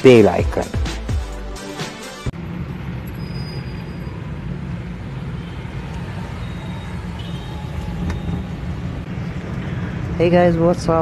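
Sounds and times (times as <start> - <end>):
engine and road rumble in cabin: 2.3 - 11.0.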